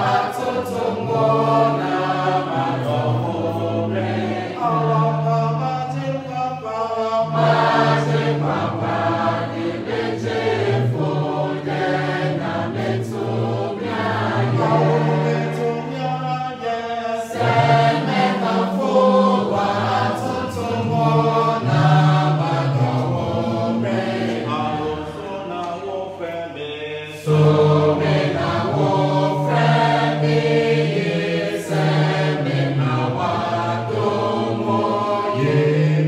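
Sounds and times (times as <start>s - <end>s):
congregation singing a hymn: 0.0s - 36.0s.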